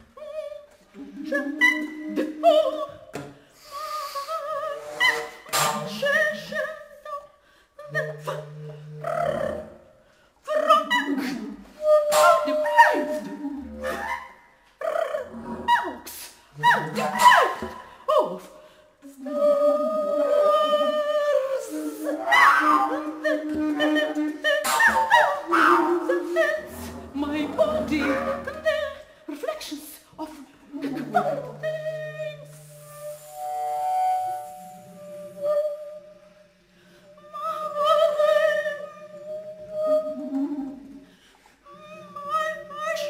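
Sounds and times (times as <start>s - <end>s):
woman's voice: 5.6s - 9.6s, 10.5s - 14.1s, 14.8s - 32.8s, 41.7s - 43.0s
bass clarinet: 30.8s - 36.5s
bass flute: 32.1s - 36.4s.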